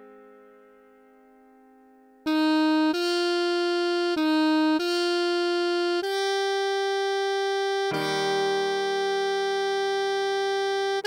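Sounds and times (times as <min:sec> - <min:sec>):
sustained accompaniment chord: 0:02.3 - 0:11.0.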